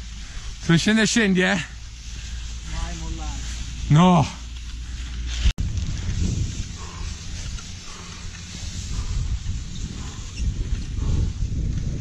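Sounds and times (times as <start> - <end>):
ski and tyre hissing over snow: 0.0 - 12.0
heavy breathing: 1.7 - 2.7, 3.3 - 11.7
wind rumbling on microphone: 1.7 - 12.0.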